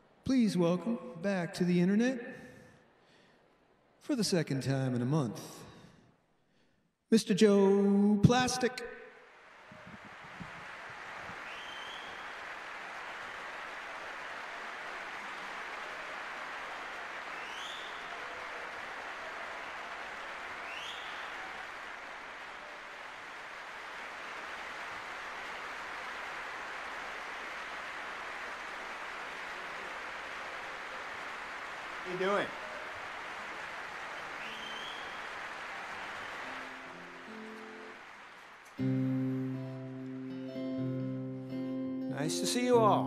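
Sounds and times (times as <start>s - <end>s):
crowd applause: 9.2s - 41.7s
short rising whistles: 11.4s - 12.4s, 17.3s - 18.2s, 20.6s - 21.5s, 34.1s - 35.3s.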